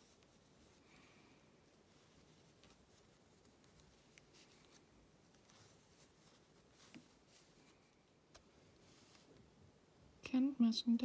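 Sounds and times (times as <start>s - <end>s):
yarn rustling: 0.0s - 9.6s.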